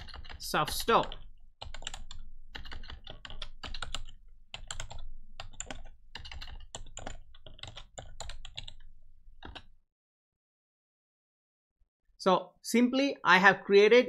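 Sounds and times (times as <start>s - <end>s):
computer keyboard typing: 0.0s - 9.7s.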